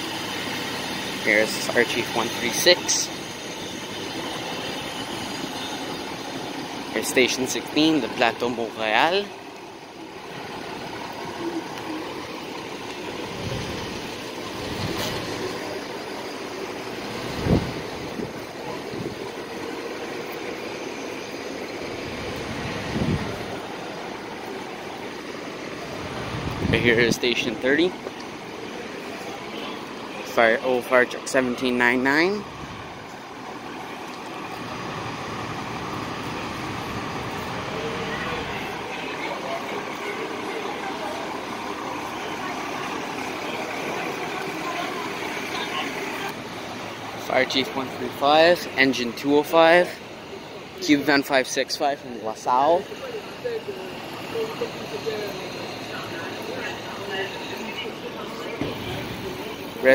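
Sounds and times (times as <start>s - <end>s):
fire trucks idling rumble: 0.0s - 59.9s
street noise: 0.0s - 59.9s
people talking: 1.2s - 3.2s, 6.9s - 9.4s, 25.9s - 32.9s, 35.9s - 59.9s.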